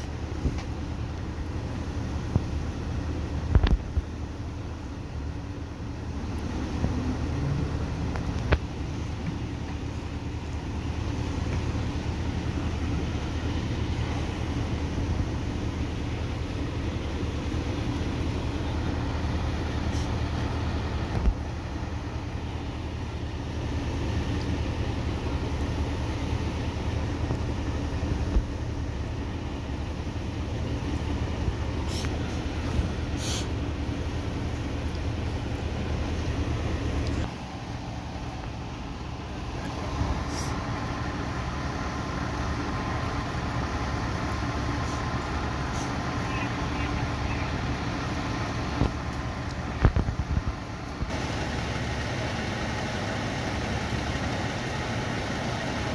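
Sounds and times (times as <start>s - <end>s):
idling engines and road traffic: 0.0s - 55.9s.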